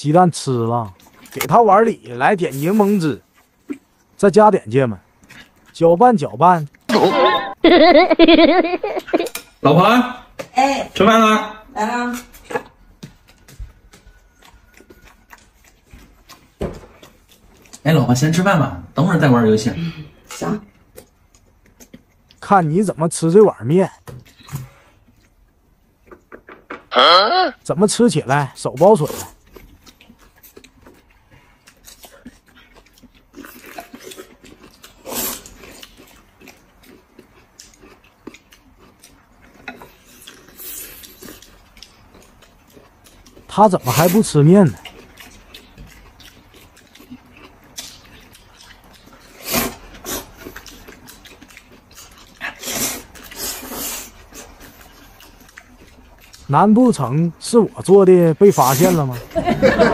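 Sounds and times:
noodles being slurped: 43.8 - 57.0.

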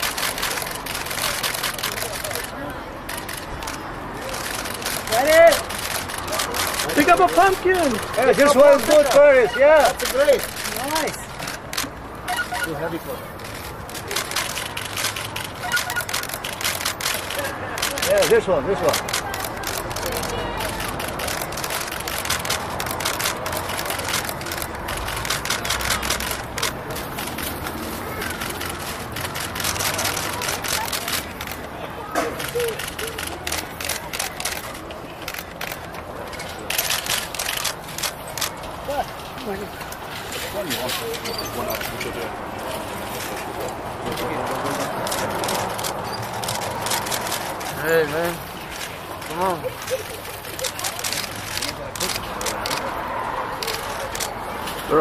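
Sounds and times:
camera shutters clicking: 0.0 - 38.8, 43.2 - 53.0, 53.6 - 55.0
background noise: 0.0 - 55.0
indistinct chatter: 0.0 - 55.0
sharp clicks: 13.4 - 31.6, 43.4 - 48.0.

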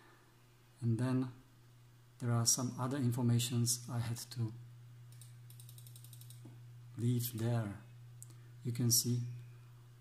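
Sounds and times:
steady low hum: 0.0 - 10.0
mouse scroll wheel clicks: 5.1 - 6.4.

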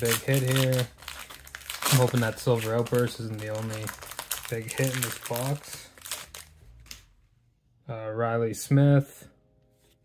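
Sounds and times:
foil wrapper tearing and crinkling: 0.0 - 7.0.

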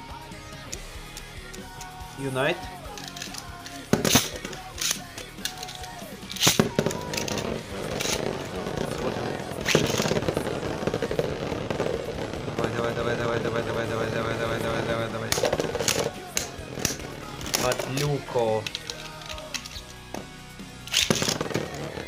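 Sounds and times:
spinning tops landing: 2.8 - 22.0
launcher snapping: 2.9 - 8.3, 15.3 - 20.2, 20.8 - 21.8.

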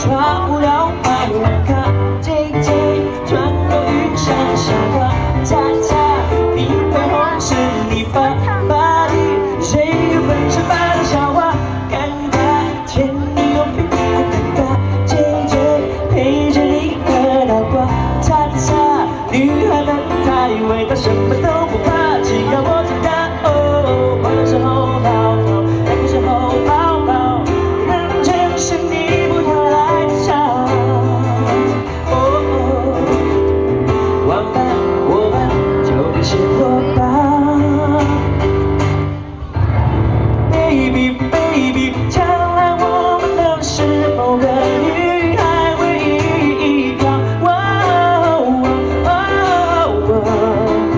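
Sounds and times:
acoustic guitar: 0.0 - 50.9
low bass notes: 0.0 - 50.9
man singing: 0.0 - 50.9.

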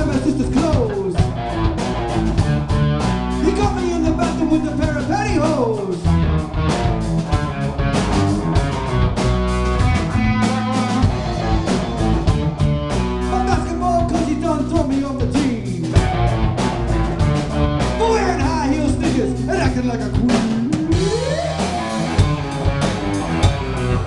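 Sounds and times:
bass guitar: 0.0 - 24.0
drum kit steady beat: 0.0 - 24.0
electric guitar bending notes: 0.0 - 24.0.

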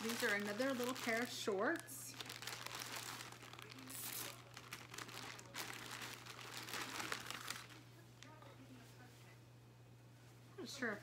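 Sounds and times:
garment rustling and crinkling: 0.0 - 7.8.

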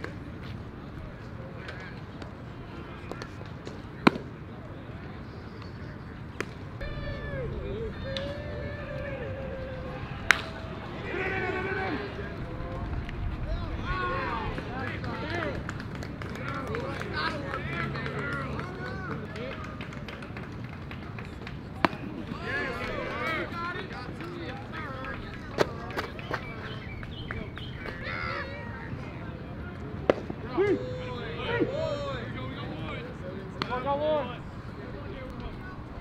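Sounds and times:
crowd chattering and calling out: 0.0 - 36.0
baseball hitting glove pops: 10.2 - 10.6.

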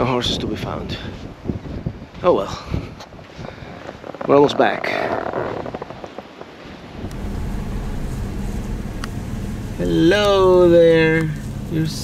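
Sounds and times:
faint outdoor noise: 0.0 - 12.0
car rumble from inside cabin: 7.0 - 12.0.

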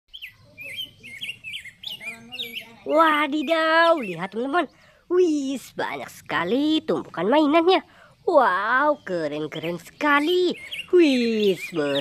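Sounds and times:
small bird chirping: 0.1 - 12.0.

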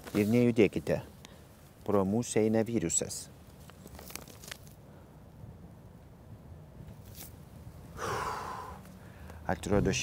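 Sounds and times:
rustles and clicks of handling: 0.0 - 2.3, 3.4 - 4.8, 6.8 - 7.6.

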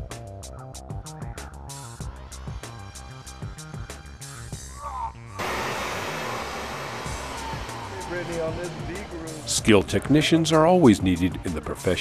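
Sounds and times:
background music: 0.0 - 12.0
torch flame hissing: 5.4 - 9.5.

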